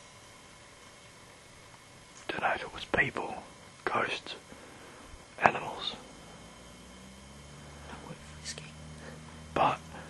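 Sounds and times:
faint low hum: 0.0s - 10.0s
steady hiss: 0.0s - 10.0s.

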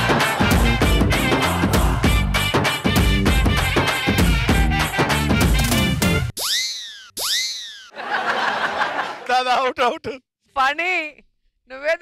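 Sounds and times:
background music: 0.0s - 6.3s.

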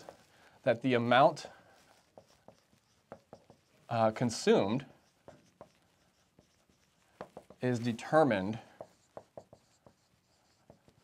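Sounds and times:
marker scratching on whiteboard: 0.0s - 11.0s.

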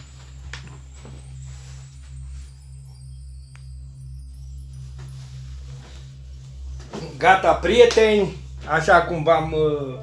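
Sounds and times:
rustling and shuffling: 0.0s - 3.3s, 4.6s - 9.4s
low steady hum: 0.0s - 10.0s.

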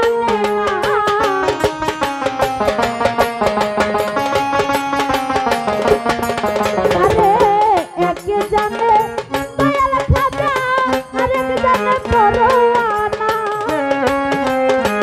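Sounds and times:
electronic keyboard melody: 0.0s - 15.0s
tabla and percussion rhythm: 0.0s - 15.0s.

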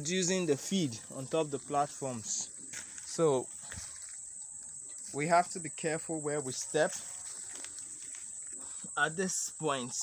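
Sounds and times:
rustling of leafy undergrowth: 0.0s - 10.0s
footsteps through plants: 0.1s - 9.0s.

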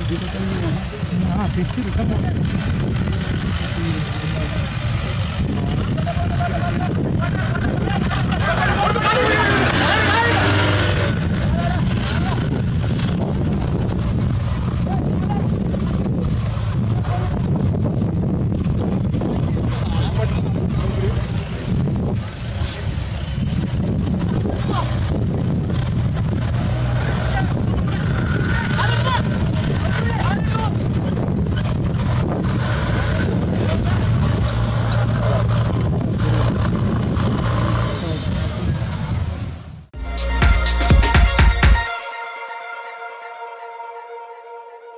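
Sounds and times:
spectators talking: 0.0s - 13.1s
jeep engine running: 0.0s - 39.7s.

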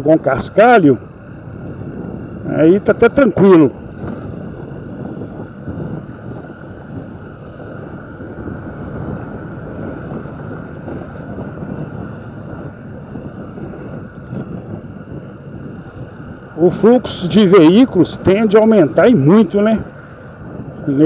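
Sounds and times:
wind on microphone: 0.0s - 21.0s
motorcycle engine running: 1.0s - 21.0s.

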